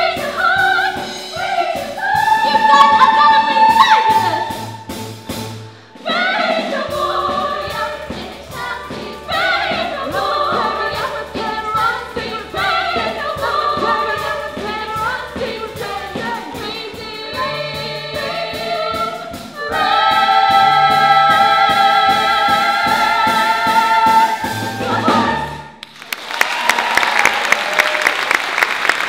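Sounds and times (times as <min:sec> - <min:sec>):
girls' choir singing gospel: 0:00.0 - 0:04.7, 0:06.0 - 0:25.8
keyboard-led band: 0:00.0 - 0:26.0.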